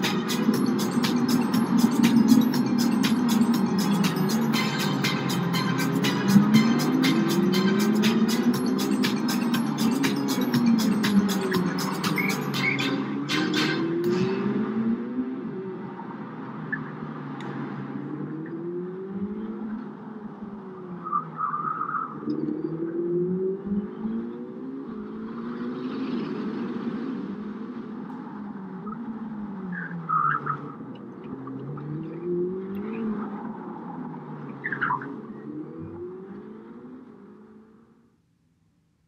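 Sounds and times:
high-pitched squeals: 0.0 - 14.8
car engine revving and shifting: 0.0 - 38.1.

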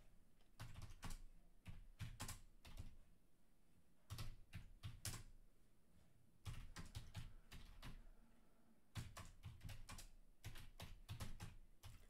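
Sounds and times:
faint computer keyboard typing: 0.4 - 3.1, 4.0 - 5.4, 6.4 - 8.2, 8.9 - 12.0.

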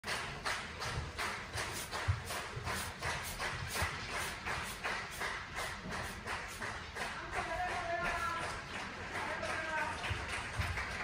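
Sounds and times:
audience clapping in unison: 0.0 - 11.0.

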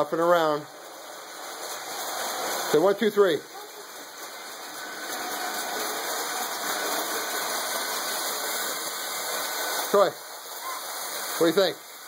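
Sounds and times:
toy train whirring on metal track: 0.0 - 12.0.

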